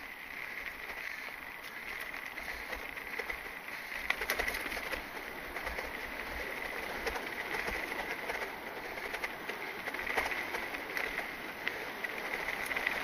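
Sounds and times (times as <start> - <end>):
bike rattling over bumps: 0.0 - 13.0
bike tyres rolling on dirt: 0.0 - 13.0.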